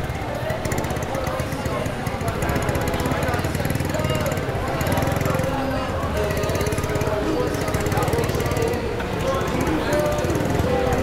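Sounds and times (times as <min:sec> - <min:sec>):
crowd chatter: 0:00.0 - 0:11.0
motor scooter engine chugging: 0:00.0 - 0:11.0.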